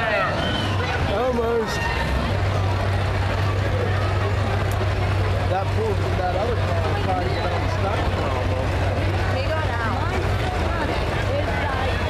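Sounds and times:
car engines droning: 0.0 - 12.0
crowd voices: 0.0 - 12.0.

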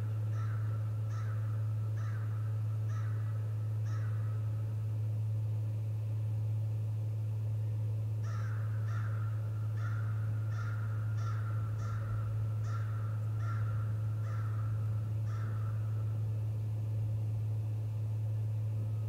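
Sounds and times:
low electrical hum: 0.0 - 19.0
crow cawing: 0.3 - 4.5, 8.2 - 16.1.

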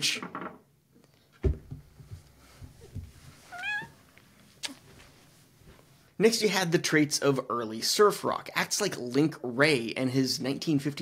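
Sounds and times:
cat meowing: 3.5 - 4.0.

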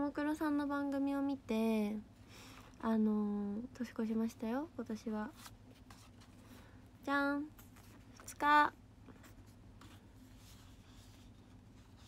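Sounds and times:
paper calendar rustling: 9.1 - 12.0.

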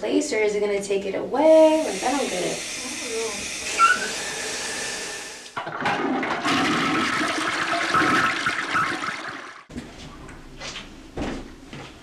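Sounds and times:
toilet flushing: 1.7 - 9.7.

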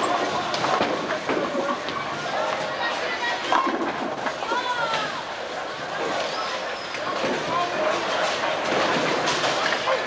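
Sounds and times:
bowling balls rolling: 0.0 - 2.8.

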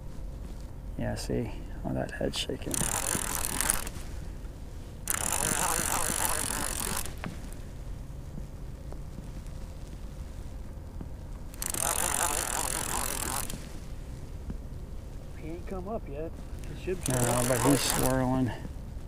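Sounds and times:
fishing reel whirring: 2.6 - 4.0, 5.0 - 7.6, 11.5 - 13.8, 16.8 - 18.5.

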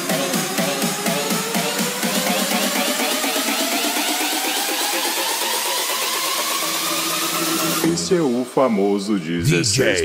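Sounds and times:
electronic dance track: 0.0 - 8.3.

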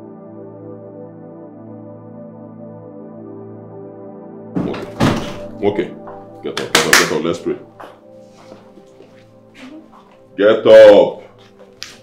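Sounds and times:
soft background music: 0.0 - 12.0
loud hits on person: 4.6 - 5.5.

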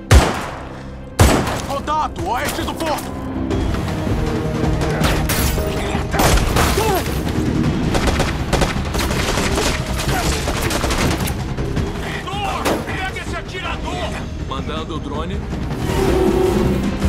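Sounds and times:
tense music score: 0.0 - 17.0
rapid gunfire: 0.1 - 1.6, 7.9 - 11.4.

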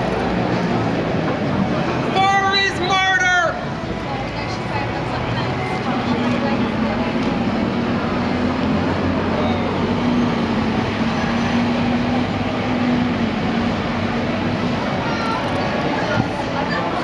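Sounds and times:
murmur of distant voices: 0.0 - 17.0.

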